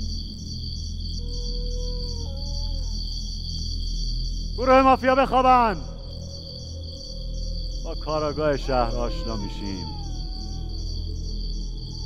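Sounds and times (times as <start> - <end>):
low drone: 5.7 - 12.0.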